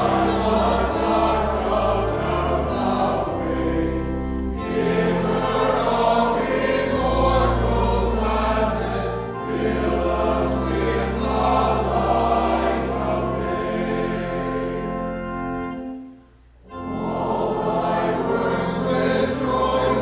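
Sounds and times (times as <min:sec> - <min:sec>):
congregation singing a hymn: 0:00.0 - 0:20.0
organ: 0:00.0 - 0:20.0.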